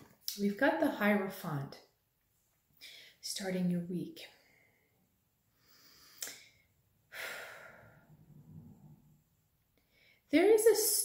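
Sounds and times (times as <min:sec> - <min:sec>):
woman breathing quietly: 0:02.8 - 0:03.2, 0:04.3 - 0:10.3
mouth click: 0:06.2 - 0:06.4.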